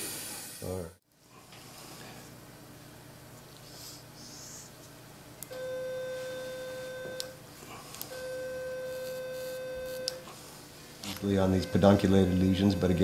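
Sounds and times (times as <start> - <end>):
mid-pitched electronic beep: 11.4 - 13.0.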